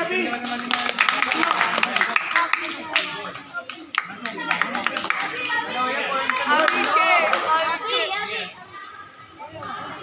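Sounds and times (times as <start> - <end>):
onlookers talking and shouting: 0.0 - 10.0.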